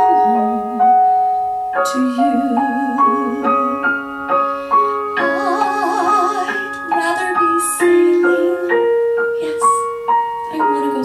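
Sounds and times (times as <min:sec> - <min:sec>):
woman singing into a microphone: 0:00.0 - 0:01.1, 0:01.8 - 0:04.0, 0:05.2 - 0:09.8
piano accompaniment: 0:00.0 - 0:11.0.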